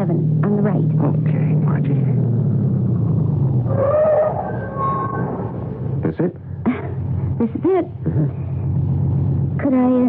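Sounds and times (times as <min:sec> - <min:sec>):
car engine running: 0:00.0 - 0:10.0
brakes squealing: 0:00.4 - 0:06.6.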